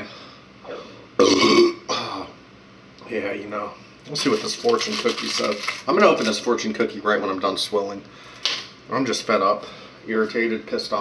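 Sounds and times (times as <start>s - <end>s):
man burping loudly: 1.2s - 2.1s.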